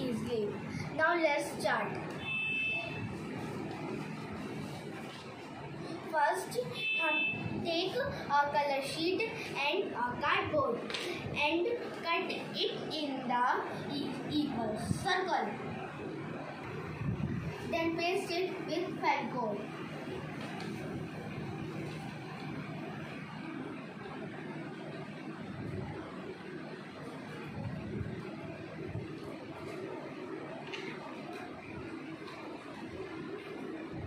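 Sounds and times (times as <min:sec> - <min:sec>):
child speaking: 0:00.0 - 0:02.1, 0:06.1 - 0:15.6, 0:17.7 - 0:19.7
background room noise: 0:00.0 - 0:34.0
low background noise: 0:00.0 - 0:34.0.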